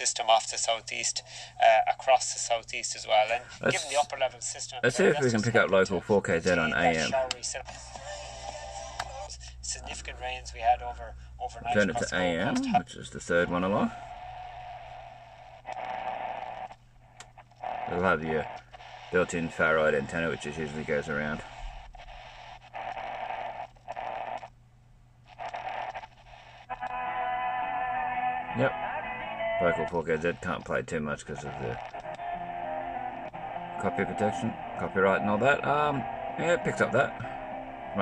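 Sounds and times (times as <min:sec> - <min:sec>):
man's voice: 0:00.0 - 0:13.9, 0:27.9 - 0:31.8, 0:33.6 - 0:38.0
radio static hiss with whine: 0:00.0 - 0:24.5, 0:25.2 - 0:38.0.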